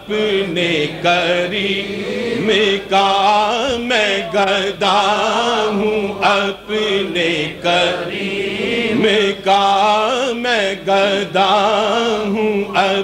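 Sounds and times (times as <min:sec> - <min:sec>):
man chanting: 0:00.0 - 0:07.9, 0:08.9 - 0:13.0.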